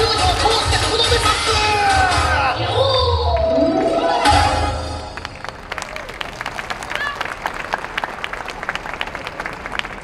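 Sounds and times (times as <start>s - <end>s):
audience applauding: 5.1s - 10.0s.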